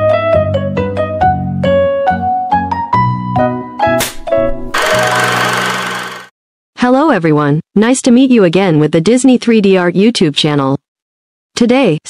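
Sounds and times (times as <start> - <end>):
film projector whirring: 4.8 - 6.3.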